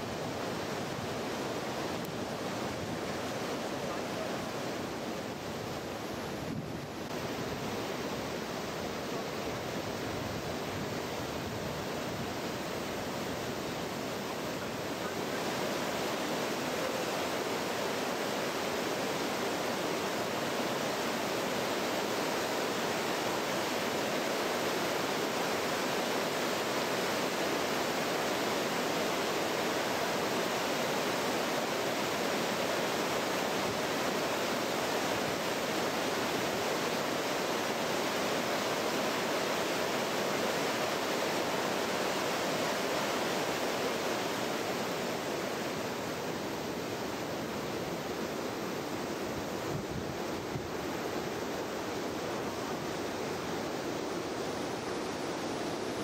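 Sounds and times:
river water rushing: 0.0s - 56.0s.

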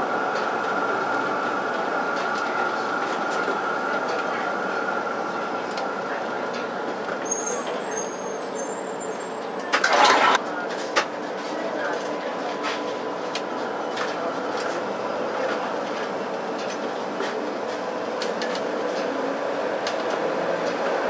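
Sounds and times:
tram rumbling on rails: 0.0s - 21.0s
tram whine: 0.0s - 21.0s
faint high squeal: 7.2s - 9.8s.

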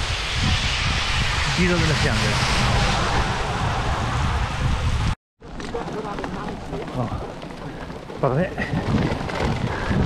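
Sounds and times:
bike rattling over cobblestones: 5.4s - 10.0s.

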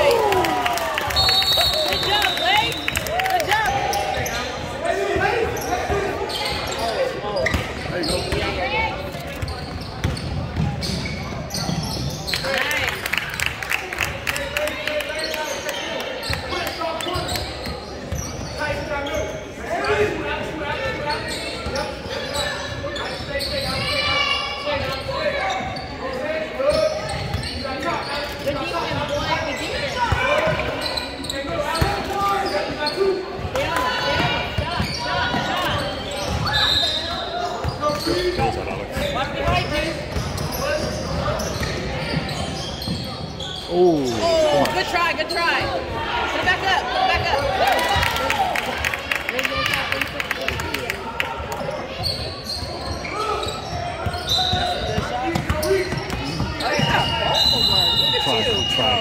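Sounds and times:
players and spectators calling: 0.0s - 59.0s.

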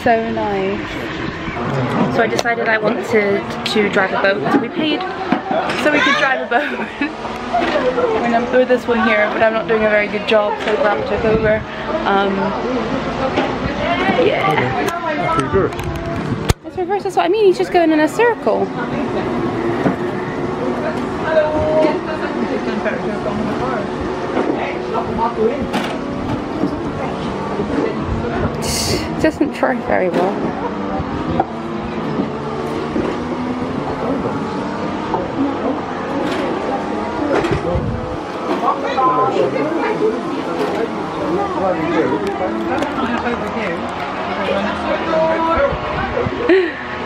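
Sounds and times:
faint voices: 0.0s - 47.0s.

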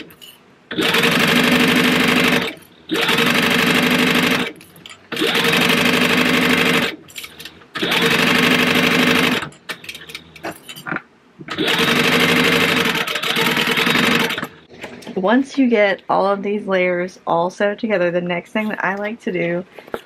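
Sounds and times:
sewing machine stitching: 0.7s - 10.2s, 11.5s - 14.6s.

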